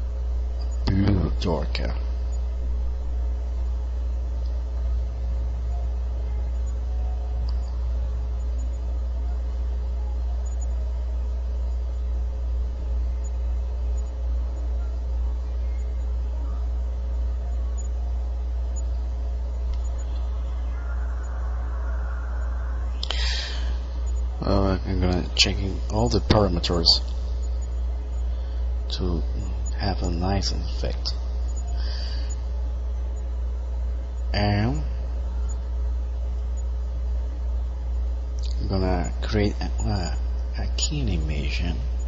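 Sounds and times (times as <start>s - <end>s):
low hum and rumble: 0.0s - 42.0s.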